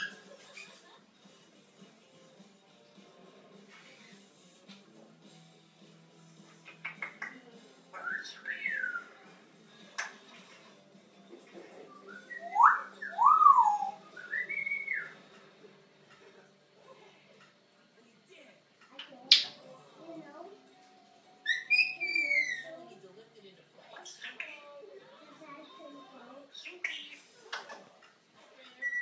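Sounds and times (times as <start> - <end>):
parrot whistling: 7.9 - 9.2, 12.0 - 15.2, 21.4 - 22.8, 28.8 - 29.0.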